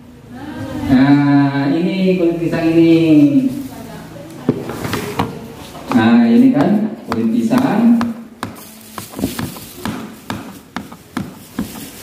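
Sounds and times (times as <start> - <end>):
knife chopping on plastic board: 4.9 - 12.0.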